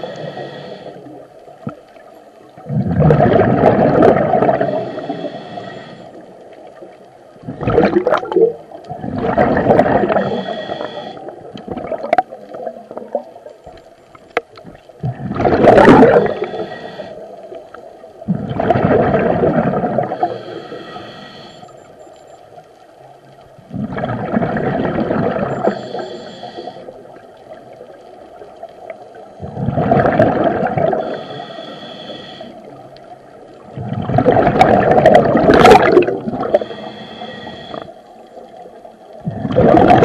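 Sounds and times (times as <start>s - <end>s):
regulator inhale hiss: 0.0s - 1.6s, 4.6s - 6.4s, 10.0s - 11.4s, 16.0s - 17.8s, 20.1s - 21.9s, 25.6s - 27.2s, 30.9s - 33.2s, 36.5s - 38.6s
exhaled bubbles gurgling: 0.0s - 21.5s, 23.5s - 40.0s.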